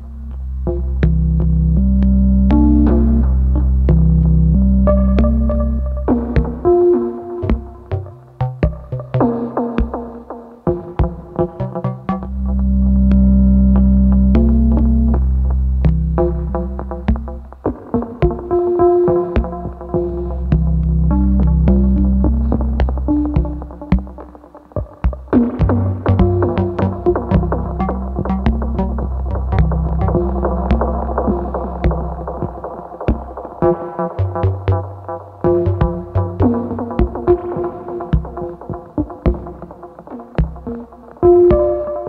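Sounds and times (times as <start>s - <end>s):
low bass synthesizer drone: 0.0s - 6.8s, 11.8s - 17.6s, 18.8s - 24.3s, 25.1s - 39.8s.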